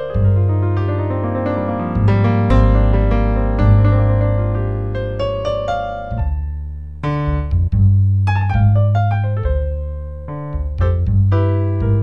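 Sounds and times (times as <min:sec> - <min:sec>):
electric piano chords: 0:00.0 - 0:12.0
held bass note: 0:00.1 - 0:12.0.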